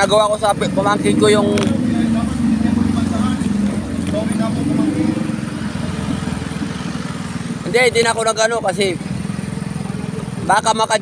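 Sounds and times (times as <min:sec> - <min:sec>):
small motorcycle engine running: 0:00.4 - 0:11.0.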